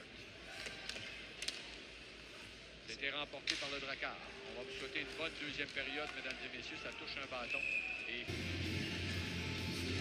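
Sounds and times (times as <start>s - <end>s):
hockey sticks and puck clacking: 0.0s - 1.9s, 3.4s - 4.0s, 5.0s - 7.2s
ice rink ambience: 0.0s - 10.0s.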